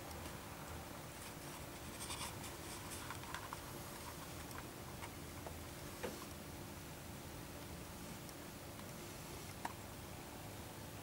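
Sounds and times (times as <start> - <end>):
hands rustling on camcorder: 1.2 - 5.2.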